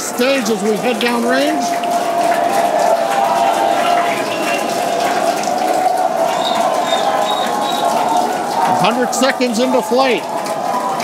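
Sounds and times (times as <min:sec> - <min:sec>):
rocket engines roaring: 0:00.0 - 0:11.0.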